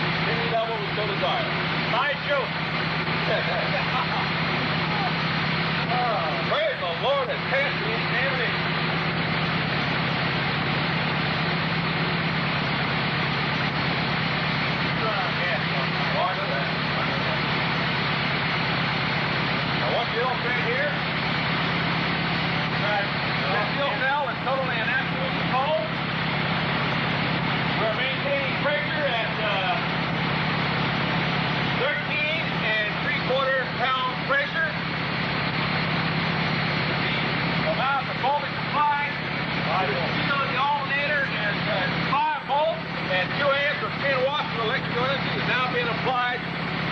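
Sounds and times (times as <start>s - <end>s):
engine running steadily: 0.0s - 46.9s
indistinct voices talking: 0.0s - 46.9s.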